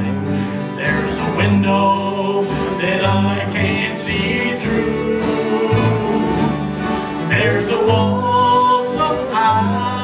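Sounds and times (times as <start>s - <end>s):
plucked upright bass: 0.0s - 10.0s
strummed acoustic guitars: 0.0s - 10.0s.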